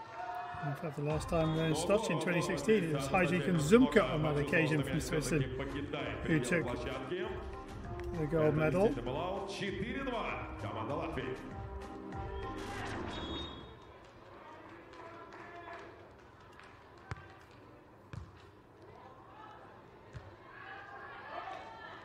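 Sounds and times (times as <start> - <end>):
faint background music: 0.5 - 15.8.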